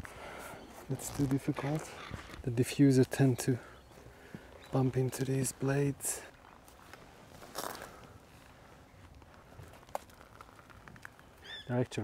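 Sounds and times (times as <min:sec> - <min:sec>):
footsteps in dry grass and leaves: 0:00.6 - 0:02.6, 0:06.3 - 0:11.6.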